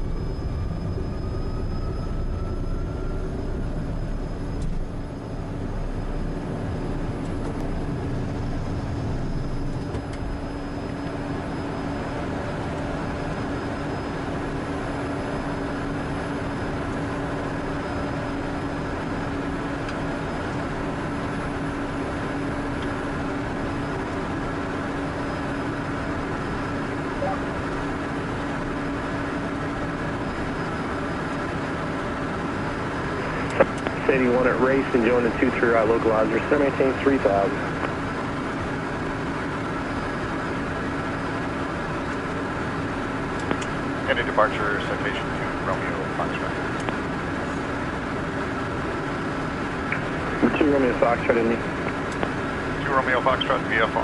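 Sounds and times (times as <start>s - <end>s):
jet engine whine: 0.0s - 54.0s
low takeoff roll rumble: 0.0s - 54.0s
steady engine drone: 0.0s - 54.0s.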